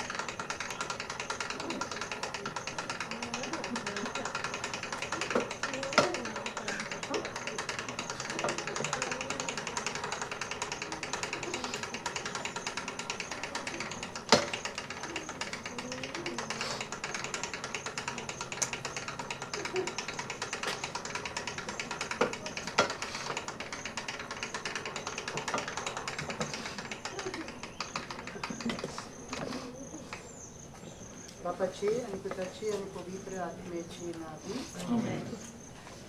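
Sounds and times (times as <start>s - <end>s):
fast even ticking: 0.0s - 30.5s
faint low voices: 1.1s - 17.3s, 25.4s - 35.6s.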